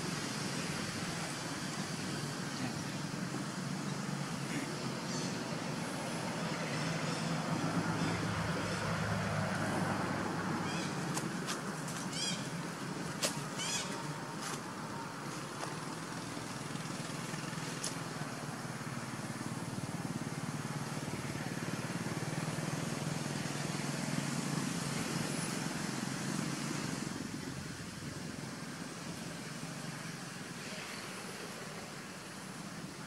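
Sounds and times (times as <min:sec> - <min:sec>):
motor vehicle hum: 0:00.0 - 0:33.0.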